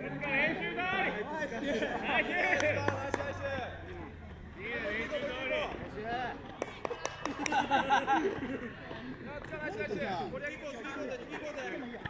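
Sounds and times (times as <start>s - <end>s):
footballers calling out: 0.0s - 12.0s.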